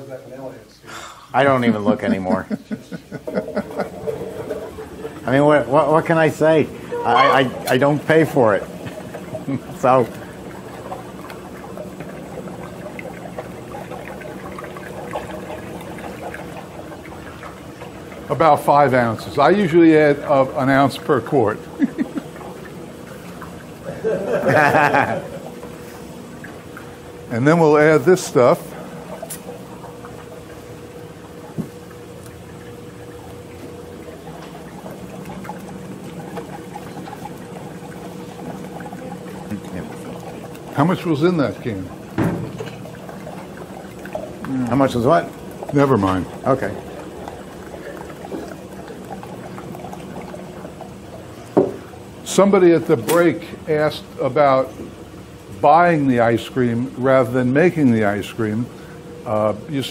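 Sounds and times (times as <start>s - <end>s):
low steady hum: 0.0s - 59.9s
liquid trickling: 1.3s - 59.9s.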